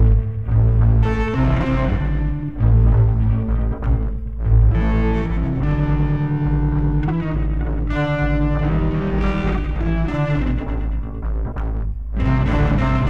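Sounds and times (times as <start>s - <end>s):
electric guitar playing slow blues: 0.0s - 11.4s, 12.2s - 13.0s
deep bass: 0.0s - 13.0s.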